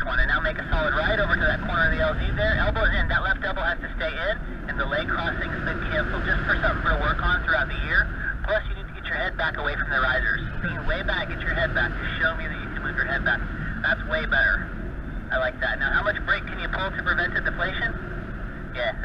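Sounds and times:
indistinct radio voice: 0.0 - 18.1, 18.7 - 19.0
wind rushing over microphone: 0.0 - 19.0.

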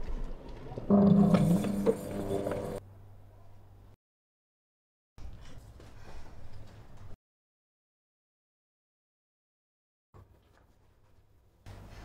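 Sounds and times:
electric scooter humming: 0.0 - 2.8.

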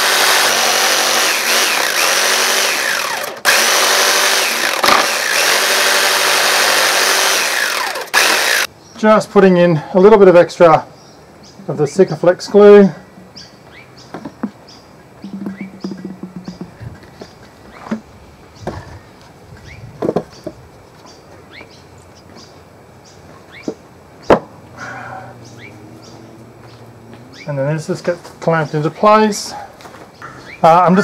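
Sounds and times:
knocks on wood: 15.2 - 17.3, 24.3 - 24.5
wooden boards handled: 15.2 - 18.9, 20.0 - 20.6.

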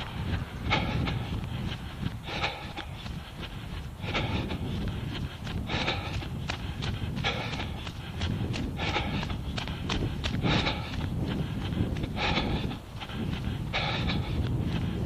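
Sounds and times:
runner breathing hard: 0.0 - 15.0
wind rumble on microphone: 0.0 - 15.0.

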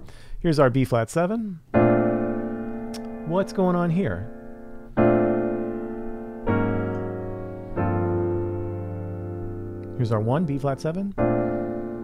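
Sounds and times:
jazz piano chords ringing: 1.7 - 12.0.

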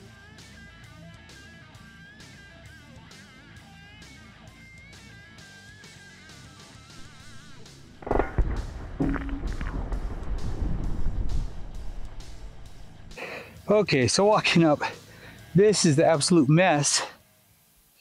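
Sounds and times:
guitar background music: 6.9 - 13.6
loud bang of bullet on steel: 7.0 - 13.2
loud low rumbling: 7.0 - 13.2.

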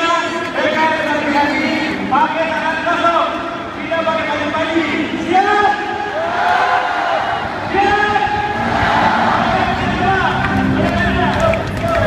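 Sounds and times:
echoing amplified sound: 0.0 - 12.0
stadium crowd din: 0.0 - 12.0.

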